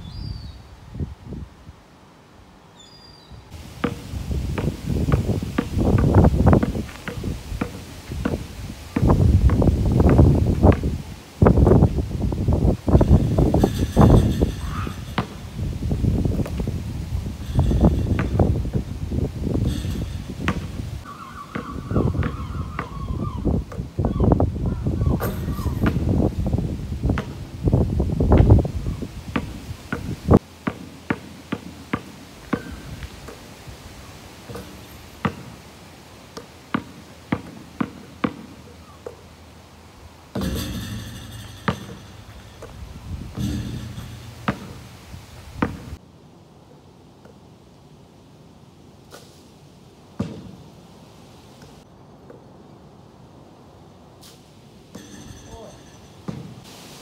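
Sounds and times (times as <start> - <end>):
rumbling background noise: 3.4 - 56.6
basketball bouncing on hard court: 3.8 - 10.9, 13.0 - 15.4, 17.6 - 18.8, 19.6 - 20.7, 21.5 - 23.0, 34.5 - 35.5, 36.7 - 39.2, 40.3 - 42.7, 43.4 - 44.8, 45.6 - 45.9.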